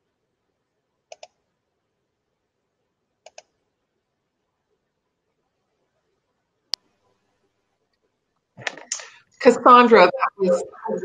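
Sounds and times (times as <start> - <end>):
computer mouse double clicks: 1.1 - 1.3.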